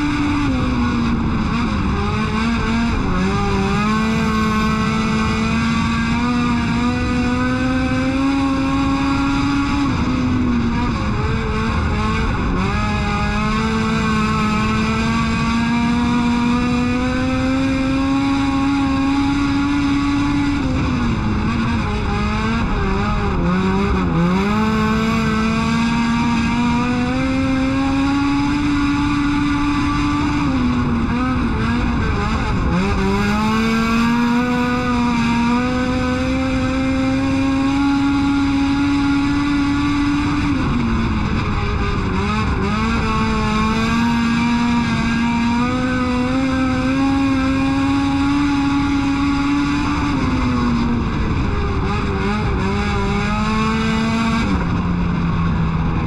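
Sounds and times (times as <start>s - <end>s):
race car engine at full throttle: 0.0s - 56.0s.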